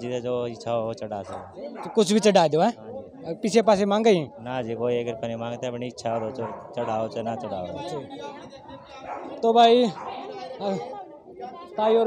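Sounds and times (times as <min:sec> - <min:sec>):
man talking: 0:00.0 - 0:08.1
crowd chatter: 0:00.0 - 0:12.0.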